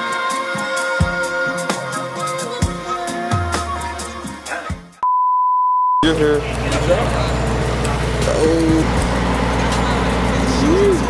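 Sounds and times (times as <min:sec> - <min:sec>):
background music: 0:00.0 - 0:05.0.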